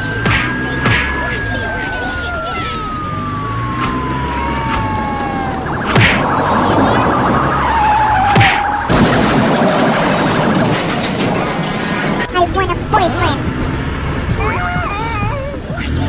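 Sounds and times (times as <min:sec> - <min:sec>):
sharp hits: 0:00.0 - 0:12.3
descending gliding tone: 0:00.0 - 0:12.4.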